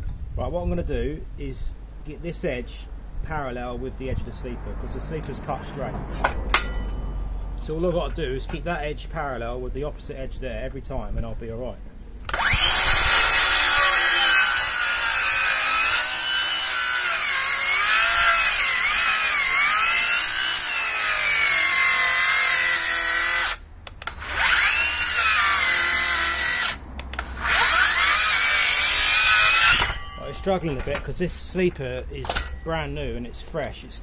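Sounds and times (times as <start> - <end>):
circular saw cutting wood: 12.3 - 31.1.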